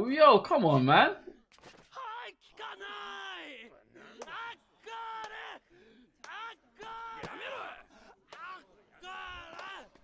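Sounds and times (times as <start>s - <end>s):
crowd shouting: 1.8s - 10.0s.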